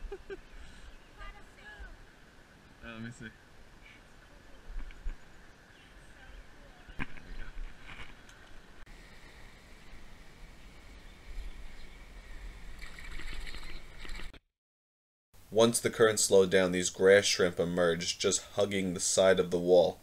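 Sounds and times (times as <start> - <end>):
water sloshing and lapping: 12.7 - 14.4.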